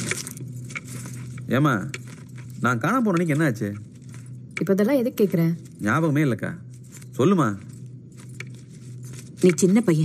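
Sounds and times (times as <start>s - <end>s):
low steady hum: 0.0s - 10.0s
person speaking: 1.4s - 7.8s, 9.3s - 10.0s.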